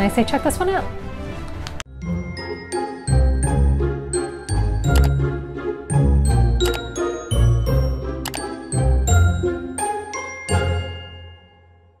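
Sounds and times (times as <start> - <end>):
chiming bell-like jingle: 1.9 - 3.6, 6.6 - 12.0.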